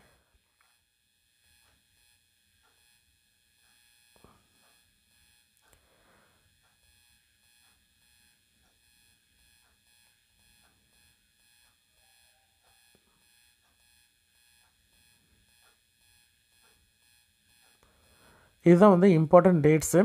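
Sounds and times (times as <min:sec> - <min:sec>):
faint ticks: 0:02.6 - 0:03.0, 0:03.6 - 0:05.9, 0:06.6 - 0:18.5.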